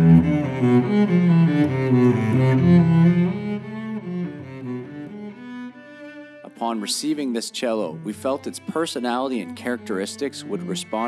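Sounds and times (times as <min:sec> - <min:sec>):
cello bowed solo: 0:00.0 - 0:11.0.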